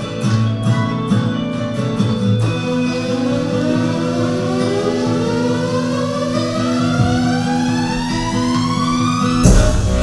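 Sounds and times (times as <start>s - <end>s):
instrumental backing music: 0.0s - 10.0s
rising synth sweep: 2.4s - 10.0s.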